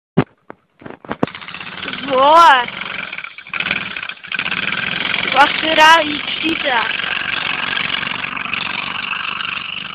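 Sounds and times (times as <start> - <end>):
quad bike engine starting: 0.8 - 9.9.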